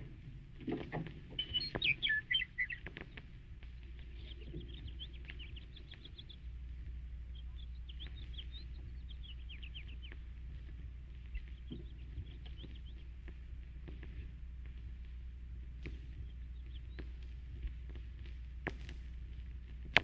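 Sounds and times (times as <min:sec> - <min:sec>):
birds chirping: 0:00.0 - 0:20.0
low steady hum: 0:00.0 - 0:20.0
faint clicks: 0:00.6 - 0:20.0.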